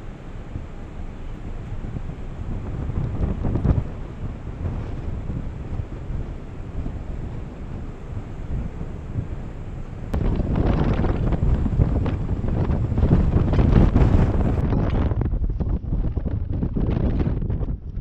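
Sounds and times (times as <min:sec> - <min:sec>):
wind buffeting microphone: 0:00.0 - 0:18.0.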